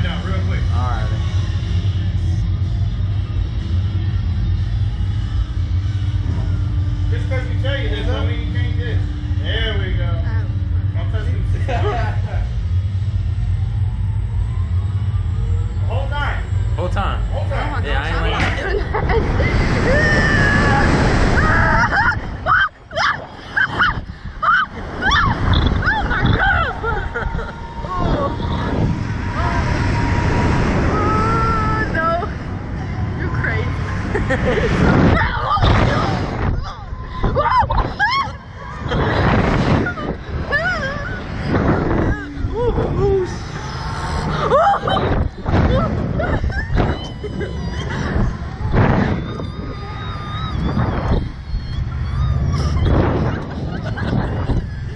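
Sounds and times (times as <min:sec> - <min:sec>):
steady hum: 0:00.0 - 0:54.9
steady low rumble: 0:00.0 - 0:54.9
wind buffeting microphone: 0:16.6 - 0:54.9
long shriek: 0:43.3 - 0:44.6, 0:46.8 - 0:53.2.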